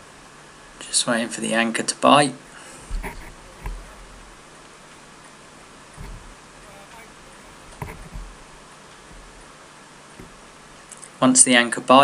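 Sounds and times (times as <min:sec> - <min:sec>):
low thumps of gusts: 0:02.7 - 0:04.6, 0:05.6 - 0:09.5.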